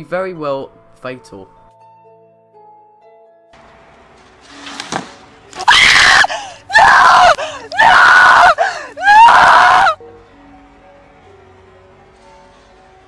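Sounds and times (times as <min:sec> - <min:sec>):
faint background music: 0:00.0 - 0:13.0
person screaming: 0:05.6 - 0:10.0.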